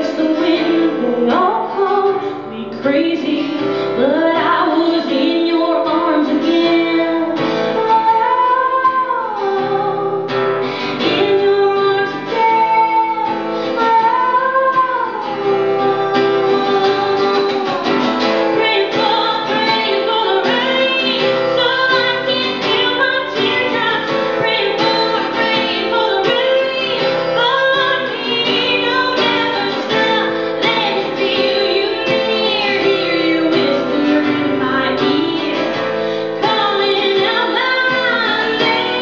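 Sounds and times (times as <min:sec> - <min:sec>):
acoustic guitar: 0:00.0 - 0:39.0
woman singing: 0:00.0 - 0:39.0.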